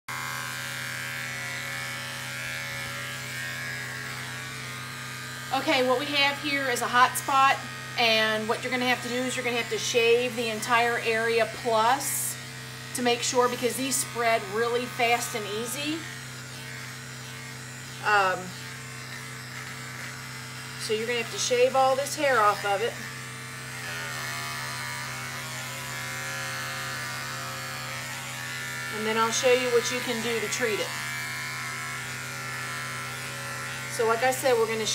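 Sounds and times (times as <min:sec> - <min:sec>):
electric pet clippers buzzing: 0:00.0 - 0:34.9.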